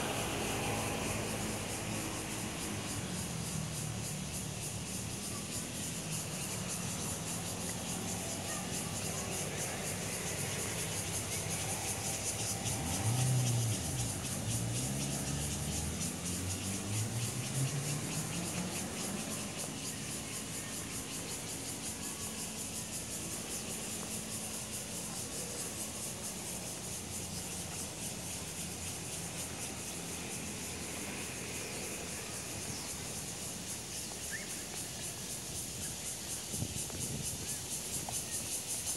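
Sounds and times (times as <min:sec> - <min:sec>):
vehicle engine passing: 0:00.0 - 0:04.2, 0:07.1 - 0:21.8, 0:23.2 - 0:34.1.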